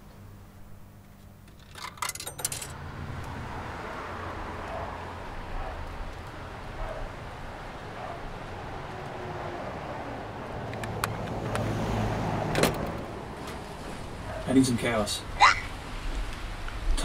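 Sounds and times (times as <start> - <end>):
traffic on a wet road: 2.7 - 17.0.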